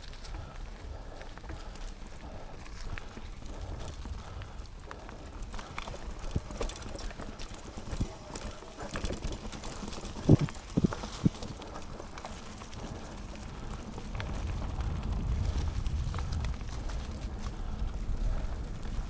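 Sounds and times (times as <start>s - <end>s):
bike clattering and clicking: 0.0s - 19.0s
tyre rumble on dirt: 5.2s - 19.0s.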